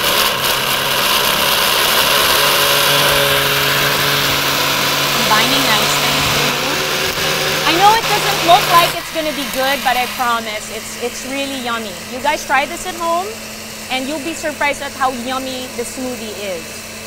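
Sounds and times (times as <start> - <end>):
blender running: 0.0 - 17.0.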